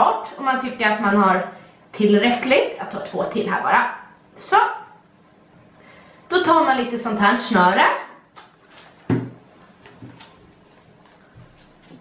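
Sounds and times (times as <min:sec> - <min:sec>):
woman's voice: 0:00.0 - 0:05.0, 0:06.3 - 0:08.2
plastic ribbon rustling and clicking: 0:08.3 - 0:12.0.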